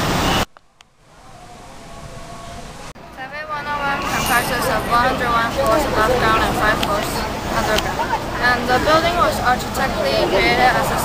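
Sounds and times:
distant city traffic hum: 0:00.0 - 0:11.0
loud street traffic: 0:02.4 - 0:11.0.

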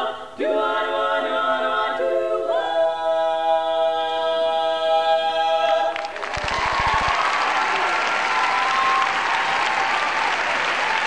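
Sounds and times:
women singing a cappella harmony: 0:00.0 - 0:06.0.

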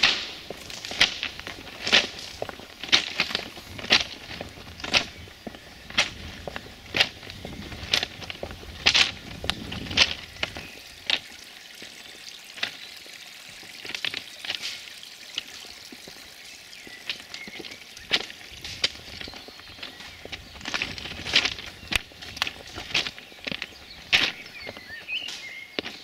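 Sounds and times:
footsteps crunching on stones: 0:00.0 - 0:26.0.

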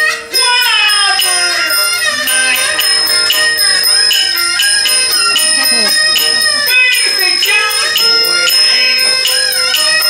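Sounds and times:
small bronze bell ringing: 0:00.0 - 0:10.0
melody sliding in pitch: 0:00.3 - 0:10.0.

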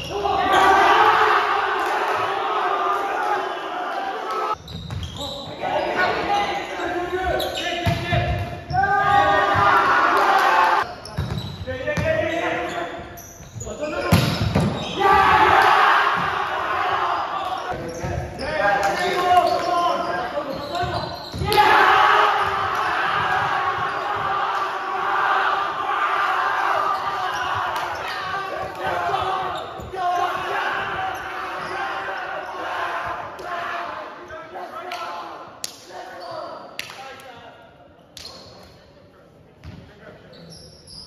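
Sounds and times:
shouting and cheering: 0:00.0 - 0:04.6, 0:05.6 - 0:10.9, 0:14.9 - 0:17.8, 0:20.8 - 0:36.1
players calling out: 0:00.0 - 0:35.4.

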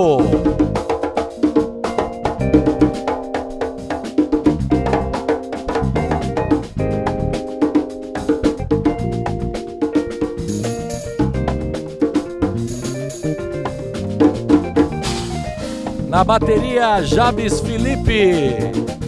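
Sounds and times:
hand percussion: 0:00.0 - 0:19.0
live band instrumental groove: 0:00.0 - 0:19.0
cymbal strikes: 0:15.0 - 0:15.9.

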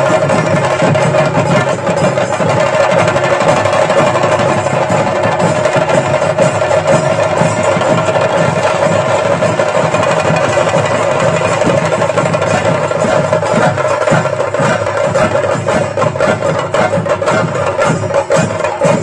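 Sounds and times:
drums played loud and fast: 0:00.0 - 0:19.0.

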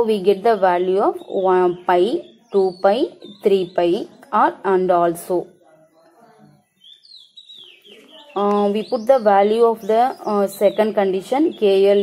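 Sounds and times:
faint bird chirps: 0:00.4 - 0:04.6, 0:05.4 - 0:12.0.

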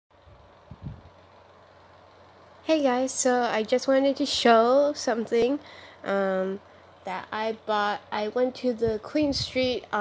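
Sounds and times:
faint steady hum: 0:00.2 - 0:10.0.

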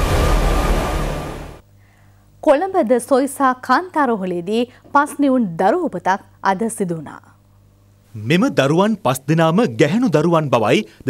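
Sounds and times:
dense low noise: 0:00.0 - 0:01.6
steady siren-like tone: 0:00.0 - 0:01.6.

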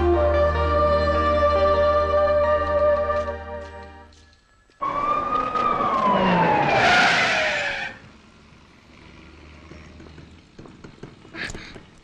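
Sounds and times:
police siren wailing: 0:04.8 - 0:08.1.

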